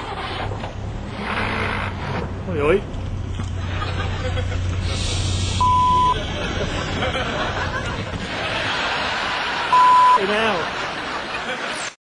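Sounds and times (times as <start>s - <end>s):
car engine humming: 0.0s - 11.2s
rushing noise: 4.7s - 10.0s.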